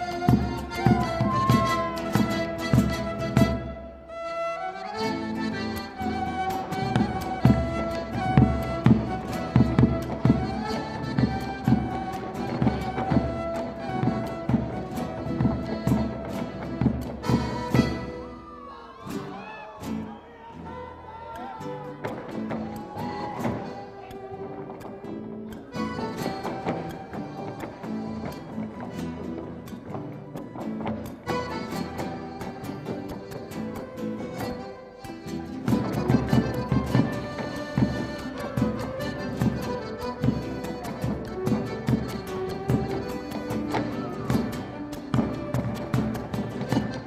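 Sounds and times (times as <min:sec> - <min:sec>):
fiddle and accordion melody: 0:00.0 - 0:18.6, 0:20.7 - 0:47.0.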